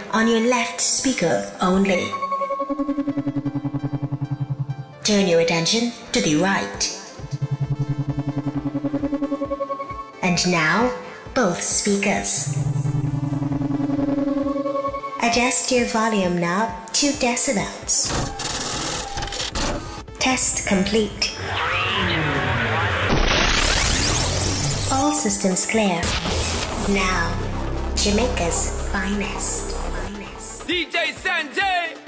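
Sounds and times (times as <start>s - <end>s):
fast stuttering synthesized tone: 1.8s - 5.3s, 7.2s - 10.2s, 12.4s - 15.4s, 20.4s - 25.2s, 26.0s - 30.7s
falling gliding synth tones: 1.9s - 5.1s, 7.3s - 10.2s, 12.4s - 15.3s
low steady hum: 12.4s - 14.7s.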